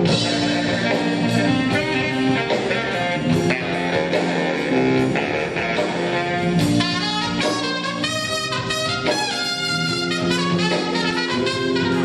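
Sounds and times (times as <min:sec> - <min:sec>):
big band playing jazz: 0:00.0 - 0:12.0
guitar: 0:00.0 - 0:12.0.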